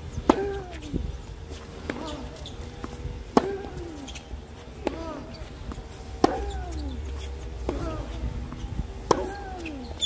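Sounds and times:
tennis ball impacts: 0.2s - 0.8s, 1.8s - 3.9s, 4.7s - 6.8s, 7.6s - 9.7s.

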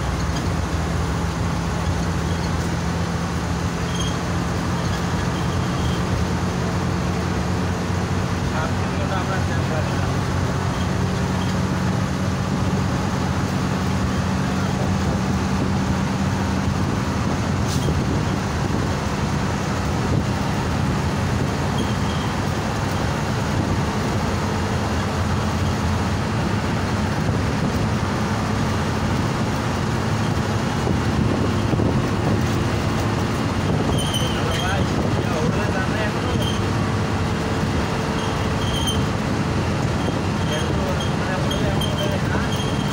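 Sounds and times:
coach engine drone: 0.0s - 42.9s
tyre and road noise: 0.0s - 42.9s.

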